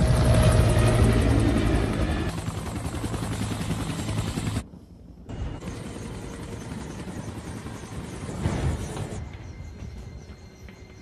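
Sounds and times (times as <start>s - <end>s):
helicopter rotor and engine: 0.0s - 11.0s.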